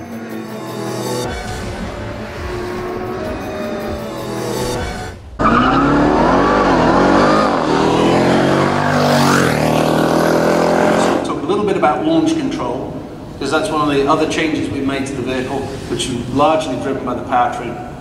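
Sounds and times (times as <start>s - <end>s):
background music: 0.0s - 11.3s
car engine accelerating hard: 0.3s - 11.4s.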